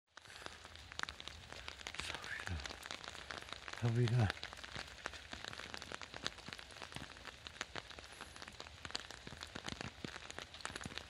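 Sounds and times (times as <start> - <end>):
rain pattering and dripping: 0.1 - 11.0.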